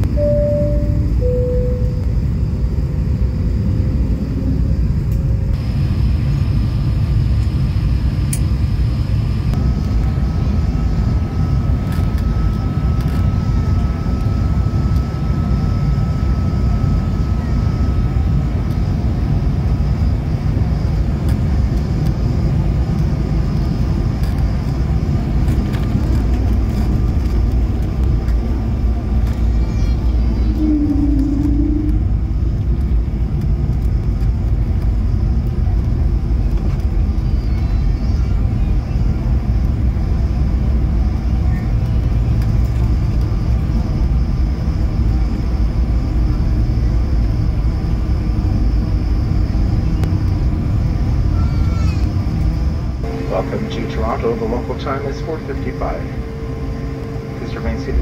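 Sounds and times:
short tone: 0.0 - 2.6, 30.4 - 32.3, 53.0 - 58.0
airplane cabin rumble: 0.0 - 58.0.

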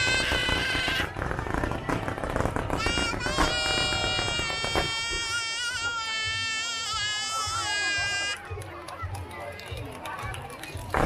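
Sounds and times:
fireworks crackling: 0.0 - 9.2, 10.6 - 11.0.

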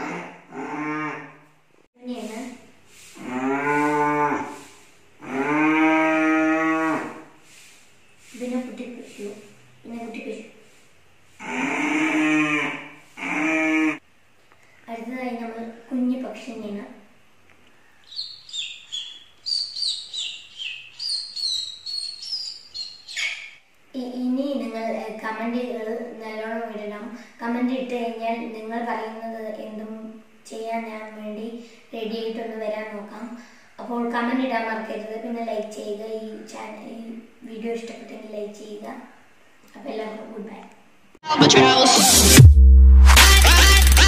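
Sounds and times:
boy imitating cow moo: 0.0 - 1.4, 3.2 - 4.6, 5.2 - 7.3, 11.4 - 14.0.

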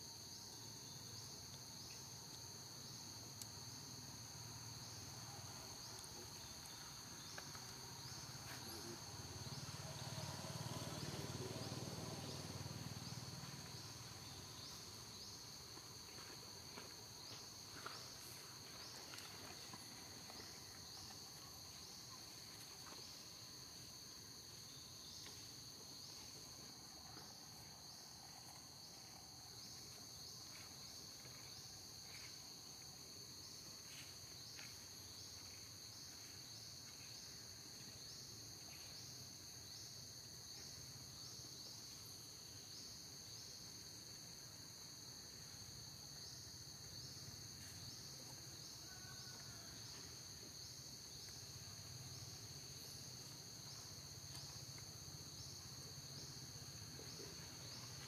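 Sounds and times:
insects chirring: 0.0 - 58.0.

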